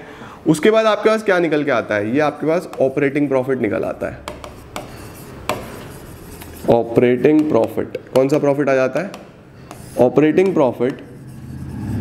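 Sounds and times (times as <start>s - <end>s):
marker tip tapping: 2.6s - 3.0s, 4.2s - 6.6s, 7.2s - 11.1s
marker pen scratching on board: 4.2s - 12.0s.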